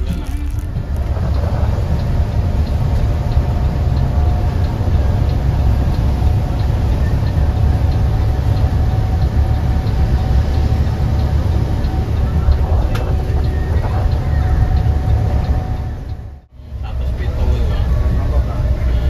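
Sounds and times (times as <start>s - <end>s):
faint regular ticking: 0.0s - 16.4s
engine and tyres rumbling: 0.0s - 19.0s.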